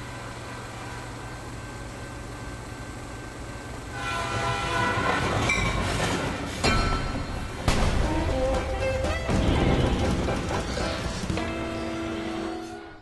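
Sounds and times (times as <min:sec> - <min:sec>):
train horn: 0:03.9 - 0:05.8.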